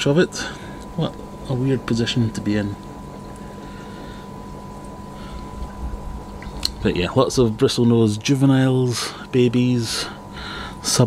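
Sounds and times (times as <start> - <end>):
aquarium water bubbling and trickling: 0.0 - 11.0
constant hum: 0.0 - 11.0.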